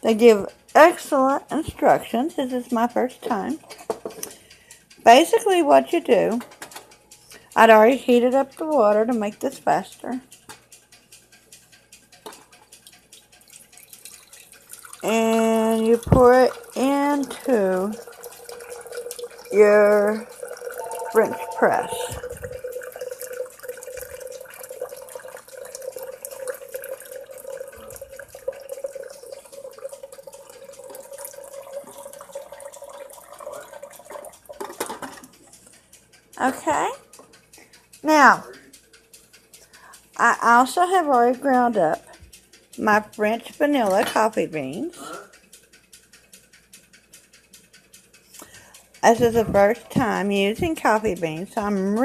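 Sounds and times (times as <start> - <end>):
hot water pouring into glass: 13.5 - 34.8.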